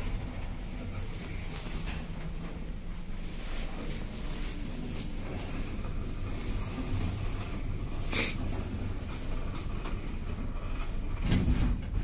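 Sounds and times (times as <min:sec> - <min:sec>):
elevator hum and rumble: 0:00.0 - 0:12.0.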